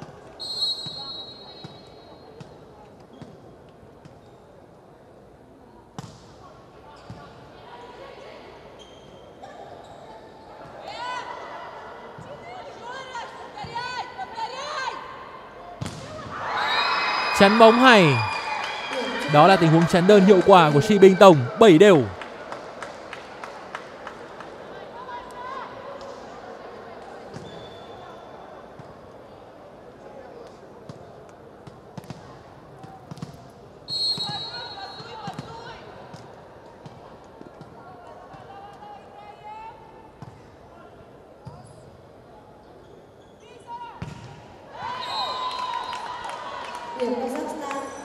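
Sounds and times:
referee's whistle: 0.4 - 2.0, 16.6 - 18.4, 33.9 - 35.2, 44.9 - 45.5
murmur of crowd voices: 17.3 - 18.3, 18.9 - 22.9.

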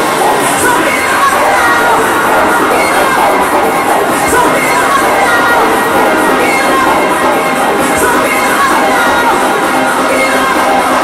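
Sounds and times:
crowd cheering and shouting: 0.0 - 11.0
loud club music: 0.0 - 11.0.

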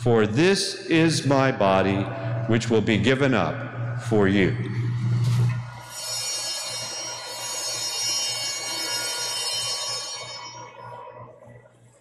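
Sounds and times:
altar bells ringing: 5.7 - 11.1.

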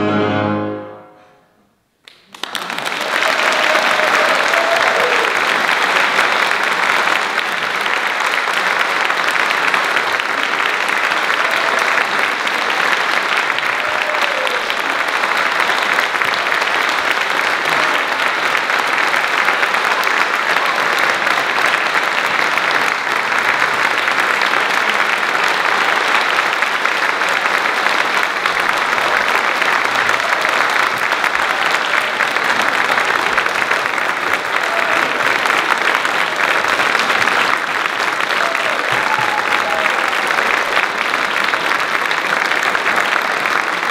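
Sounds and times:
audience applauding: 2.0 - 43.9.

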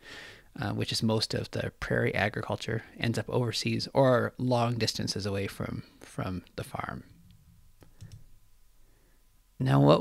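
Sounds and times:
faint clicks: 7.2 - 8.3.

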